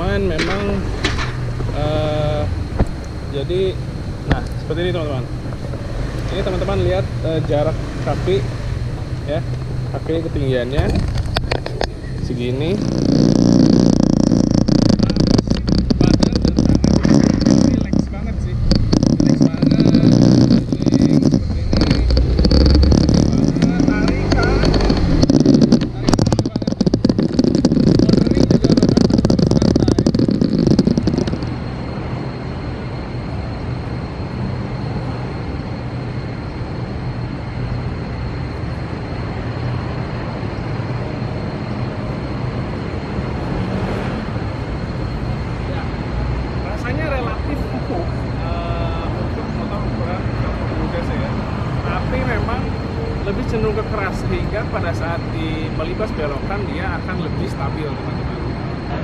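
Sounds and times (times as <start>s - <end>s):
steady hiss: 0.0s - 41.4s
crackling rumble: 0.0s - 41.6s
thin high whine: 0.0s - 59.0s
wind buffeting microphone: 8.6s - 33.5s.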